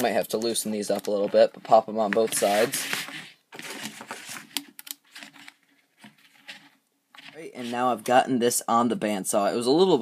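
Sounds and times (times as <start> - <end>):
plastic hose rustling: 0.0 - 8.1.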